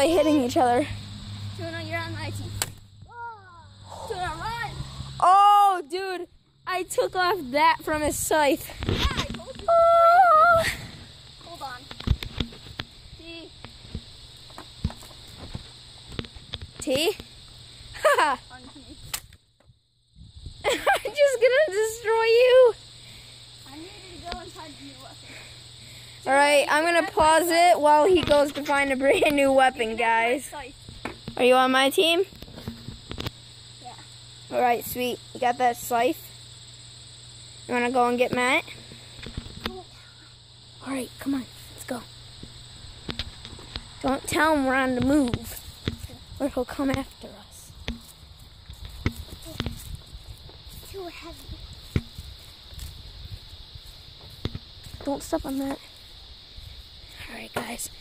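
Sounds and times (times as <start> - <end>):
high-pitched hiss: 0.0 - 58.0
footsteps on grass: 13.6 - 16.6, 41.4 - 57.8
sharp click: 19.1 - 19.4.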